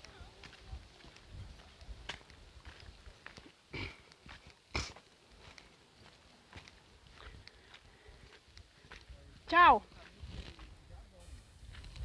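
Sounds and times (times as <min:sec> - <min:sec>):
footsteps on dirt road: 0:00.0 - 0:12.0.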